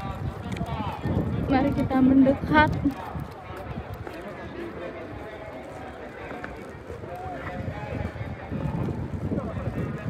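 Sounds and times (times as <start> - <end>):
faint voices: 0.0 - 10.0
footsteps on pavement: 0.0 - 10.0.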